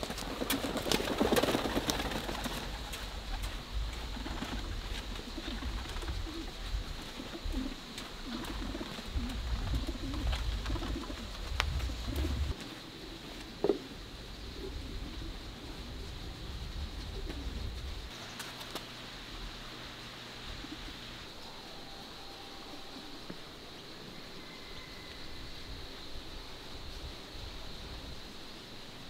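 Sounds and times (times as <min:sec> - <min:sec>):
bird cooing: 0:01.2 - 0:18.2, 0:20.4 - 0:23.6.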